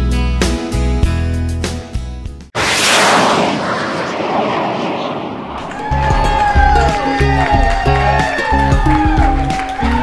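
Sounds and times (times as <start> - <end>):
explosion-like hit: 2.6 - 6.7.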